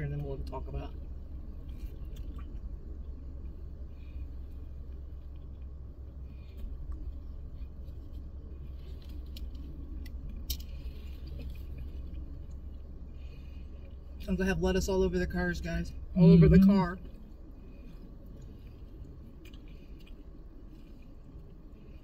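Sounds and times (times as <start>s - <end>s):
low car cabin hum: 0.0s - 22.0s
people chewing and crunching: 0.2s - 14.2s, 17.0s - 22.0s.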